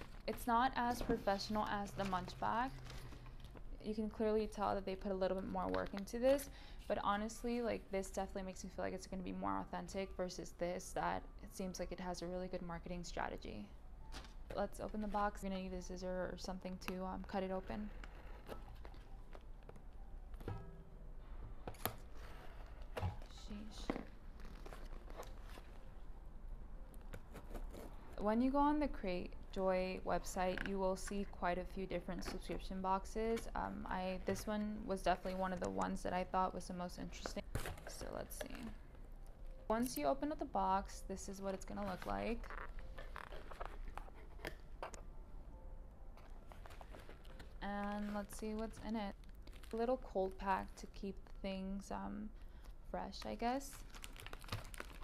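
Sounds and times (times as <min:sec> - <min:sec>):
snack packets crinkling in box: 0:53.8 - 0:55.0.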